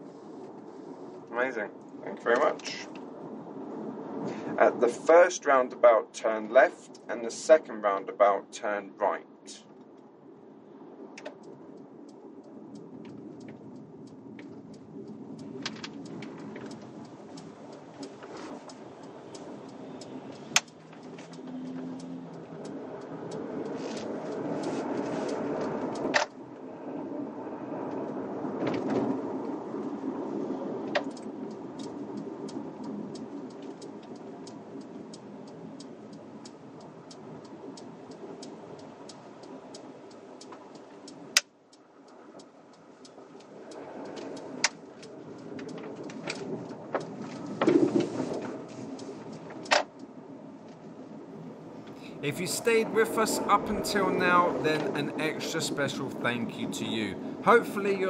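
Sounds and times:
road and tyre noise: 0:00.0 - 0:58.0.

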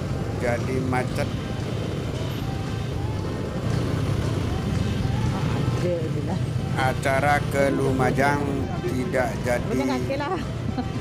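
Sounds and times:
idling engines rumbling: 0:00.0 - 0:11.0
faint voices: 0:04.3 - 0:11.0.

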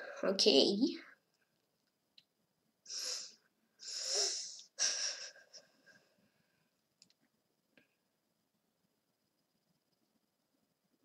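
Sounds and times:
faint clicks: 0:01.3 - 0:02.4, 0:07.0 - 0:07.9
person breathing loudly: 0:02.9 - 0:06.7.

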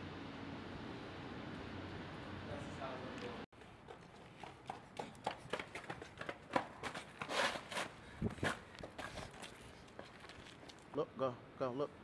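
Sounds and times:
running footsteps on brick: 0:03.6 - 0:11.0
shoe scuff: 0:06.8 - 0:10.8.

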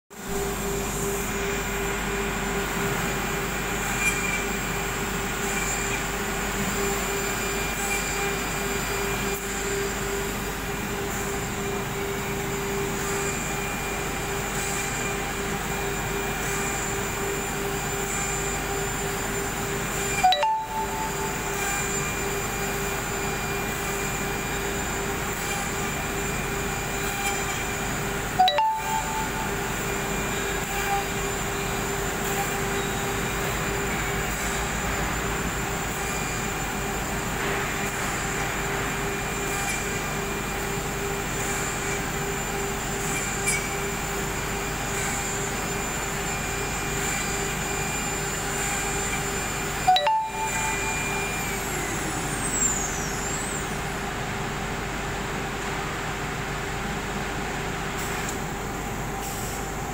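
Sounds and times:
spindle whine: 0:06.7 - 0:33.4.

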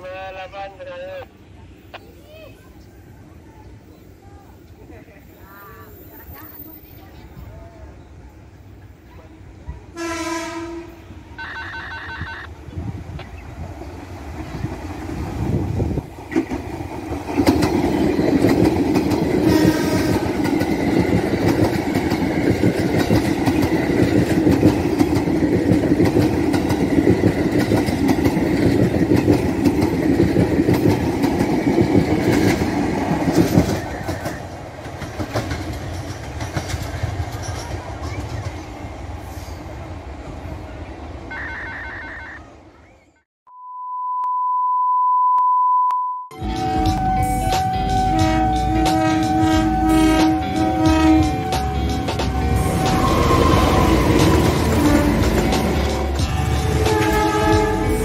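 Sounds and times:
train horn blasts: 0:10.0 - 0:12.5, 0:19.4 - 0:20.5, 0:46.3 - 0:58.0
train wheels clattering on rails: 0:15.9 - 0:38.9, 0:47.6 - 0:58.0.

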